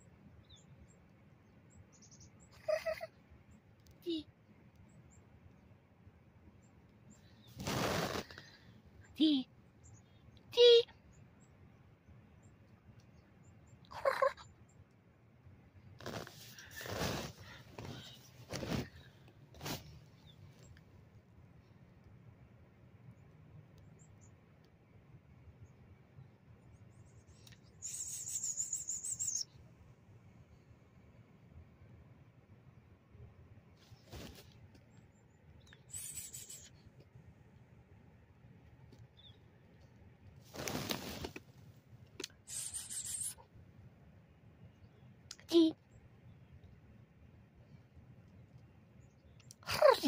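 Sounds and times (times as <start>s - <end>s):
loud rustle in nylon tent: 16.0s - 19.0s, 40.4s - 41.5s
faint high chirps: 27.1s - 29.5s
bird trilling: 27.8s - 29.5s.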